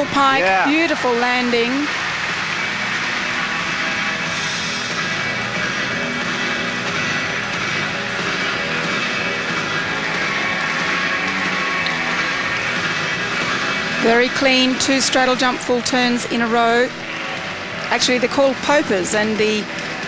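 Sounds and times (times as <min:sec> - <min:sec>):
floor exercise music: 0:00.0 - 0:14.4, 0:19.3 - 0:20.0.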